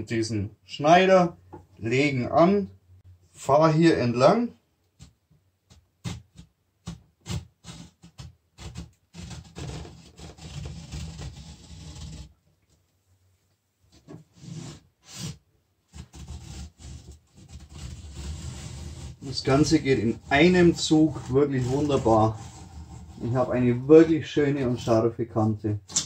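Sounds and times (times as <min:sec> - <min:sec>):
trimmer scraping edge banding: 0:17.5 - 0:23.5.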